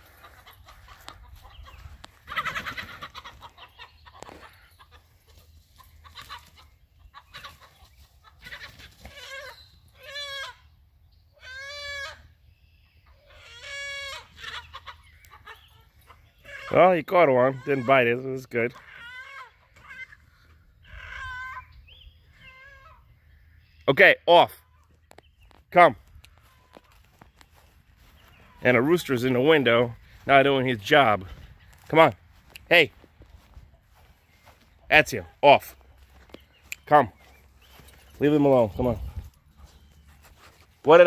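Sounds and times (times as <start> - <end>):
chickens squawking: 0.0 - 23.9, 26.0 - 41.0
man calling a dog: 16.6 - 18.8, 25.7 - 26.0, 28.6 - 33.0, 34.9 - 35.8, 36.7 - 37.2, 38.1 - 39.3.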